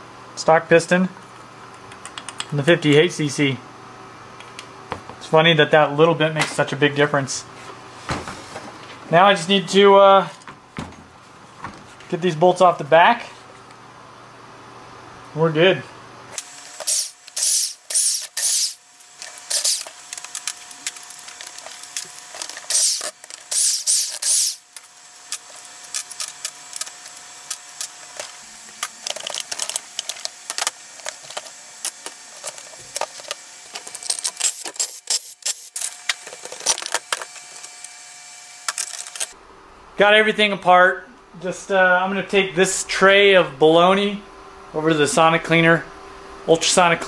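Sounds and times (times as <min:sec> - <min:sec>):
impact wrench bursts: 0:16.4 - 0:37.6.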